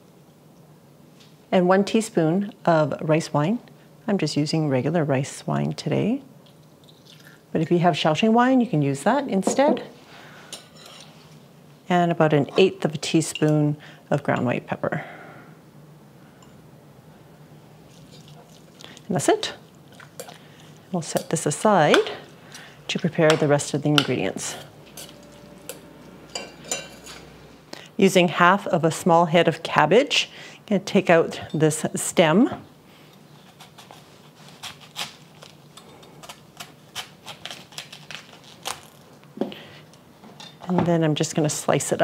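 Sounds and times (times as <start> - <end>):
wet squishing of meat: 17.8 - 20.8
knife cutting cabbage on board: 33.4 - 35.6.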